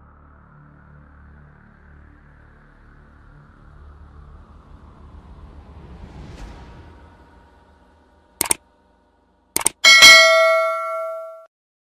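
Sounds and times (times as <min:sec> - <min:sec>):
quick clicks: 0:09.6 - 0:09.9
bell ding: 0:09.6 - 0:11.5.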